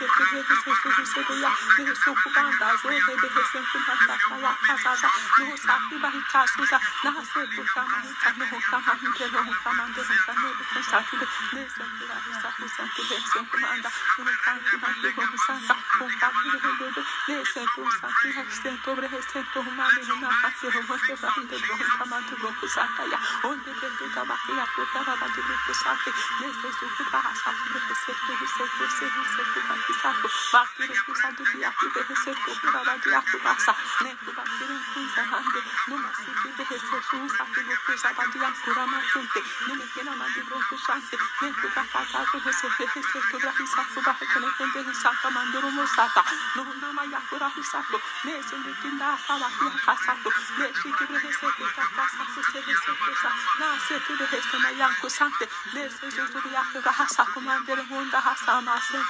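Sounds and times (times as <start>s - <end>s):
person praying in tongues: 0.0s - 59.0s.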